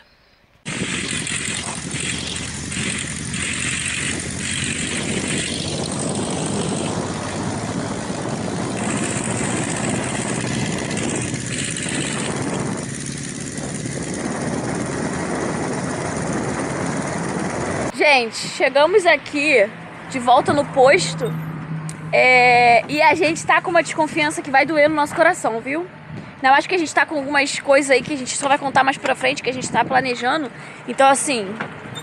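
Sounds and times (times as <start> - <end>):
van engine running: 0.6 - 17.9
wind rush on microphone: 0.6 - 18.7, 20.2 - 21.0, 22.6 - 25.3, 26.0 - 26.4, 27.5 - 30.5.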